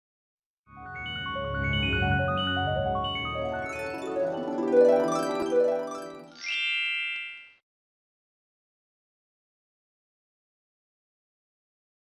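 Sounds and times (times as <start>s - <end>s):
glockenspiel-like mallet notes: 0.8s - 7.6s.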